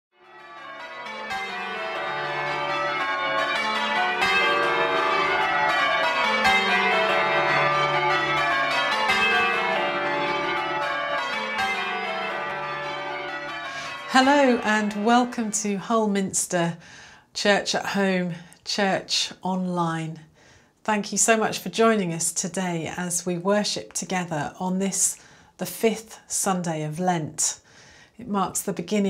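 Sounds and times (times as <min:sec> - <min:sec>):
church bells ringing: 0:00.2 - 0:17.0.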